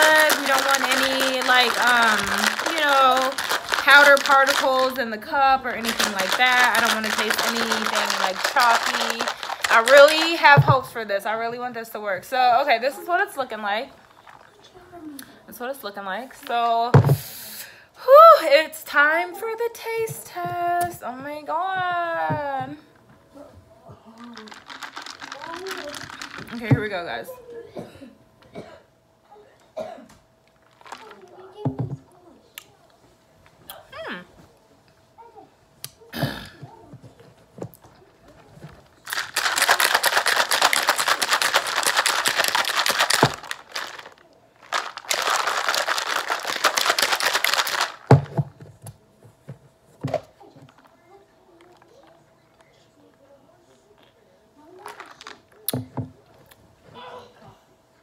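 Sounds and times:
shaker bottle sloshing and rattling: 0.0s - 11.0s, 12.9s - 14.7s, 24.0s - 27.1s, 30.5s - 32.0s, 38.4s - 48.7s, 54.8s - 56.1s.

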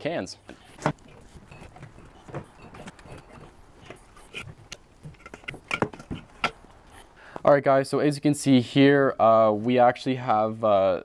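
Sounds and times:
beer cans knocking and clinking: 0.5s - 6.9s.

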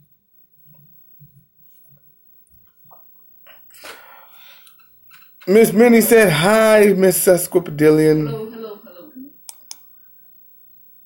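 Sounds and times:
computer mouse clicks: 9.5s - 9.9s.

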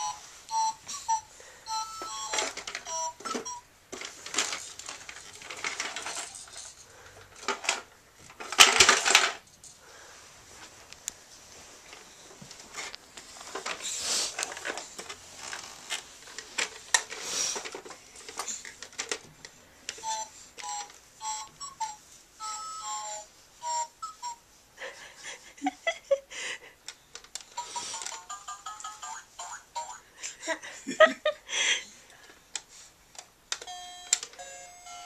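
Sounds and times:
toy beeping tune: 0.0s - 3.7s, 20.0s - 24.4s, 27.6s - 30.0s, 33.7s - 35.0s.

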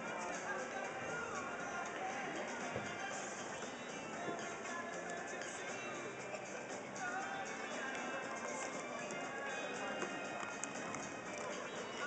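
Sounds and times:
background music: 0.0s - 12.0s
crowd chatter in a hall: 0.0s - 12.0s.

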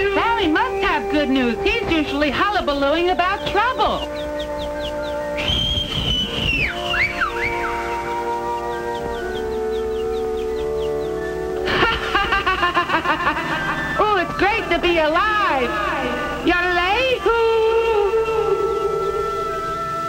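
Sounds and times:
voice with wavering pitch: 0.0s - 4.3s, 13.6s - 19.7s
held orchestral chords: 0.0s - 20.0s
sliding high whistle tone: 4.0s - 11.6s
short high falling chirps: 5.4s - 8.0s.

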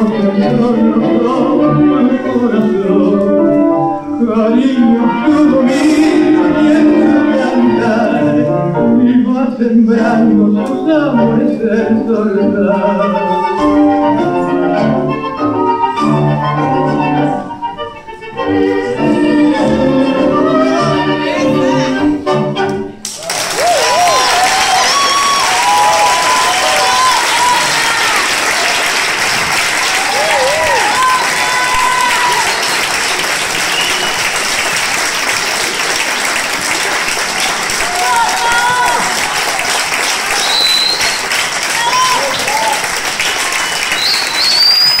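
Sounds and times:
audience applauding: 23.0s - 45.0s.

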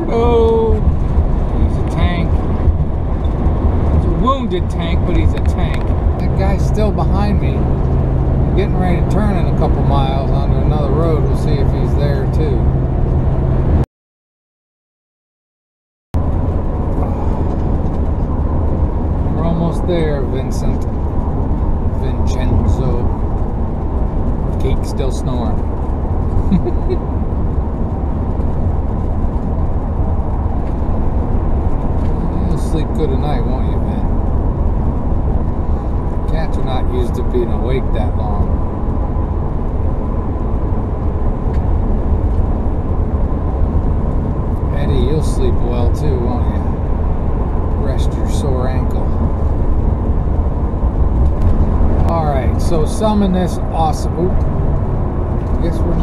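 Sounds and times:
vehicle road and engine rumble: 0.0s - 13.9s, 16.2s - 56.0s.

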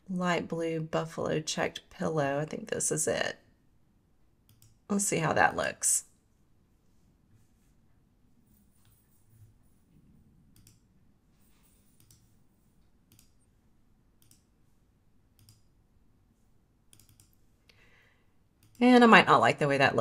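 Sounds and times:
faint computer mouse clicks: 4.5s - 4.8s, 14.2s - 14.5s, 15.4s - 15.7s.

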